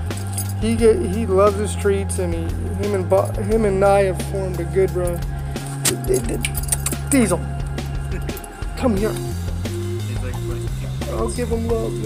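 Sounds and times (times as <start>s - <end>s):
metal chain collar jingling: 0.0s - 0.8s, 2.7s - 3.5s, 5.0s - 7.4s, 8.0s - 8.8s.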